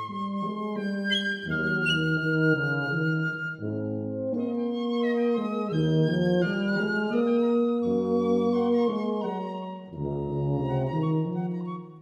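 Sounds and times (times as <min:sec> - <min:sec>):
chamber music waltz with flute: 0:00.0 - 0:12.0.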